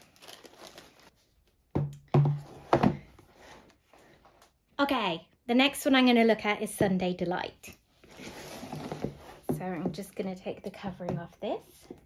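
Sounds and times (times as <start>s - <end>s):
plastic bag rustling: 0.0s - 1.2s.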